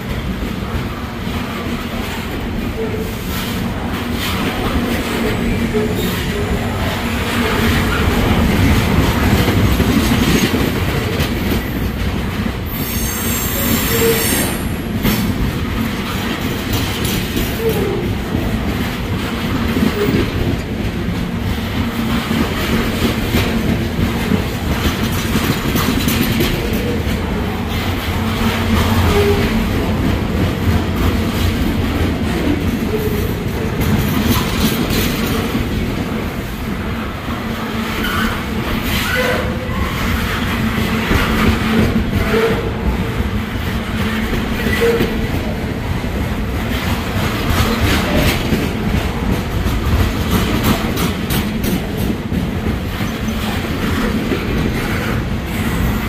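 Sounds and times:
steel wheels on rail: 0.0s - 56.0s
high-pitched wheel squeal: 12.8s - 14.7s.

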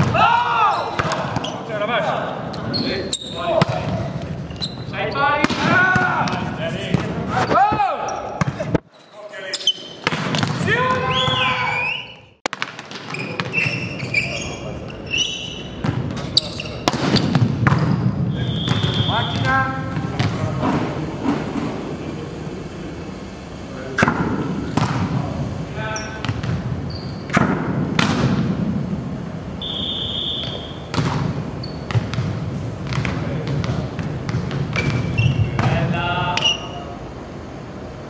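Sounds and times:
volleyball thumps echoing: 0.0s - 1.6s, 3.5s - 4.2s, 5.4s - 8.8s, 10.0s - 11.5s, 15.8s - 21.6s, 24.0s - 25.4s, 26.1s - 29.0s, 29.6s - 36.4s
sneaker squeaks on court: 0.7s - 1.7s, 2.5s - 5.3s, 8.1s - 12.2s, 12.9s - 20.4s, 26.0s - 27.4s, 30.4s - 32.3s, 34.4s - 35.8s
high squeak: 4.5s - 5.3s, 13.1s - 16.8s, 26.9s - 27.3s
sharp ball strike: 27.3s - 28.6s.

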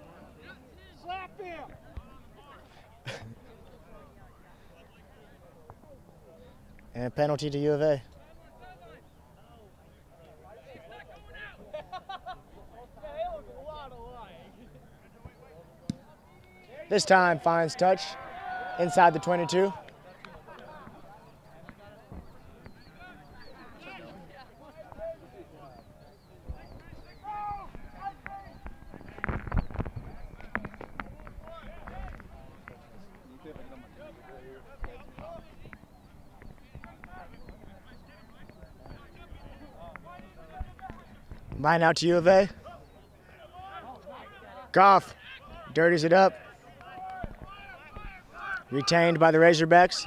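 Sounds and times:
players and spectators calling: 15.4s - 50.0s.

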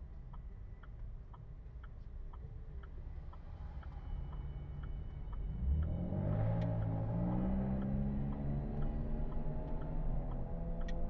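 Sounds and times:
turn signal ticking: 0.3s - 11.0s.

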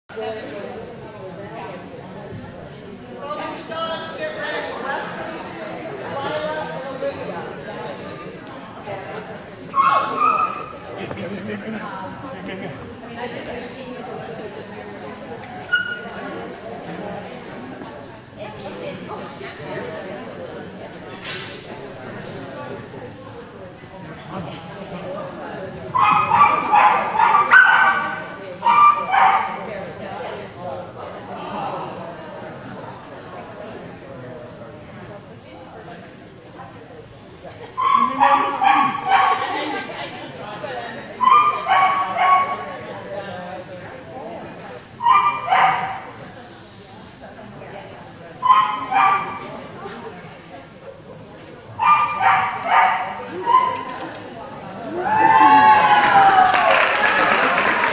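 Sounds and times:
small dog yipping: 41.2s - 42.5s, 48.4s - 49.4s.

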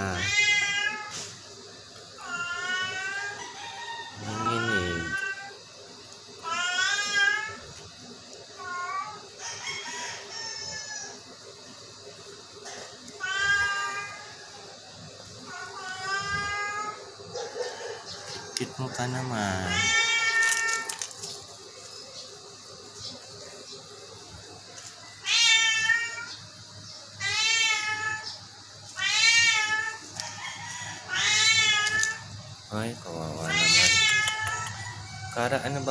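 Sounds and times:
cat meowing: 0.0s - 1.3s, 2.2s - 3.4s, 4.2s - 5.6s, 13.2s - 14.4s, 15.5s - 17.0s, 19.5s - 21.0s, 25.2s - 26.4s, 27.2s - 28.4s, 29.0s - 30.2s, 31.0s - 32.3s, 33.2s - 34.8s.

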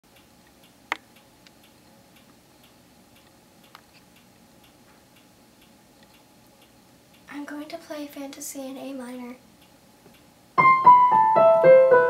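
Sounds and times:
faint regular ticking: 0.1s - 10.5s
click: 9.6s - 10.3s.

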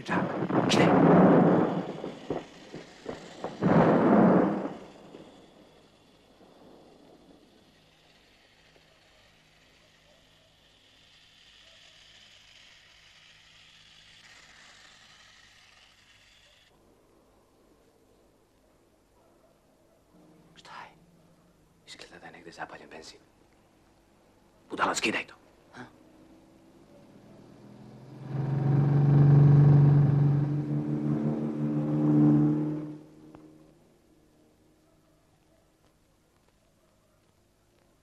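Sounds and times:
loud explosions: 0.0s - 5.3s
sharp cracks: 0.0s - 9.1s
faint hiss: 0.0s - 30.5s.

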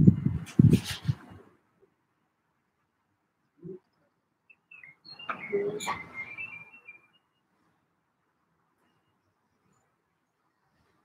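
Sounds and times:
bird chirping: 3.6s - 7.7s.

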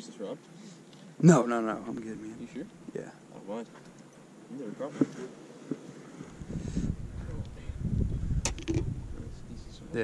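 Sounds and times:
microphone handling noise: 5.0s - 9.3s
low rumbling wind: 5.9s - 10.0s.

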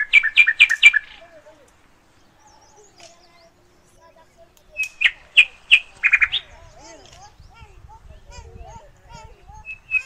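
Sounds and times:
faint sliding bird calls: 0.0s - 4.1s, 4.7s - 7.4s
bird chirping: 0.0s - 10.0s.

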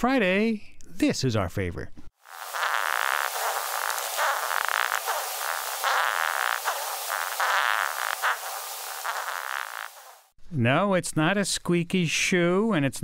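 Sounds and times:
beetle squeaky rasping: 2.3s - 10.3s.

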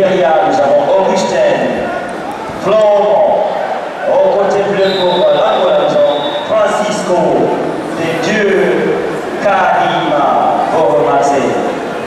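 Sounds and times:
man speaking: 0.0s - 1.9s, 2.6s - 11.8s.

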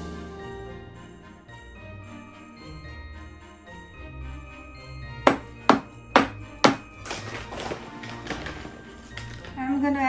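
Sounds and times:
background music: 0.0s - 10.0s
spatula tapping glass bowl: 5.3s - 6.9s.

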